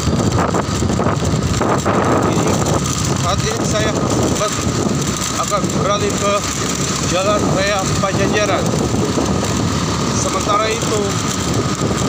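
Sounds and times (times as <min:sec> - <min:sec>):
motorcycle engine: 0:00.0 - 0:12.0
road traffic: 0:00.0 - 0:12.0
wind buffeting microphone: 0:00.0 - 0:12.0.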